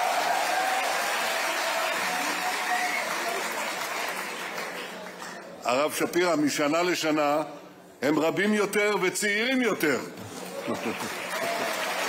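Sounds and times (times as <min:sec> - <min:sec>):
large audience applauding: 0:00.0 - 0:05.4, 0:10.3 - 0:12.0.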